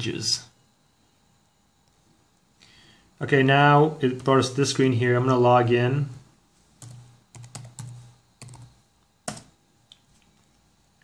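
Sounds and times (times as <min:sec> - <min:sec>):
computer keyboard typing: 0:06.8 - 0:09.5.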